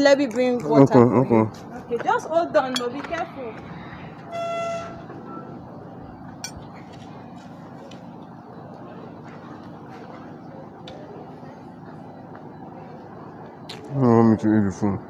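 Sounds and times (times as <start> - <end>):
low outdoor hum: 0.0 - 15.0.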